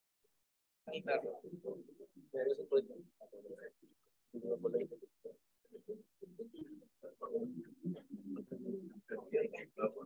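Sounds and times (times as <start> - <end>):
people talking in a hall: 0.9 - 10.0.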